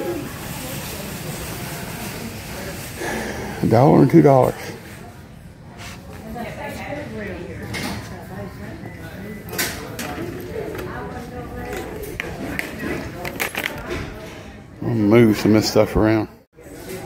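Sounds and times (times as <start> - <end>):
faint background voices: 0.0 - 17.0
clicks and clinks of items: 11.7 - 14.0.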